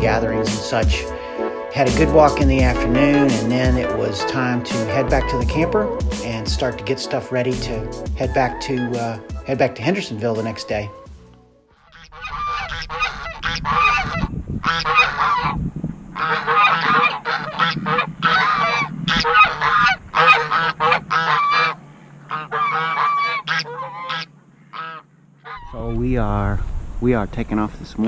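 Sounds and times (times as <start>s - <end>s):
geese honking: 0.0s - 25.9s
low rumble: 25.6s - 28.0s.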